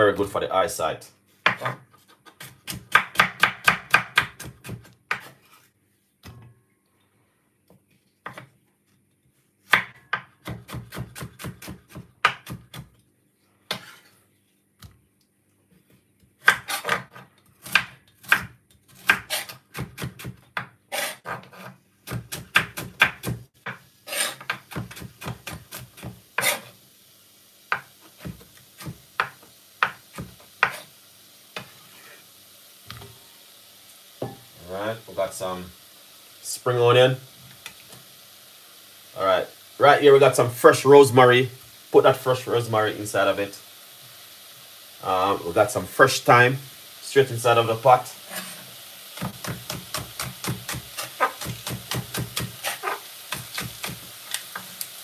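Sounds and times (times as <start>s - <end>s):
oil sizzling in pot: 2.3s - 5.7s, 9.7s - 12.8s, 16.5s - 55.0s
knife chopping on wooden board: 2.4s - 5.4s, 9.7s - 12.9s, 16.4s - 26.6s, 27.7s - 30.8s, 49.2s - 54.0s.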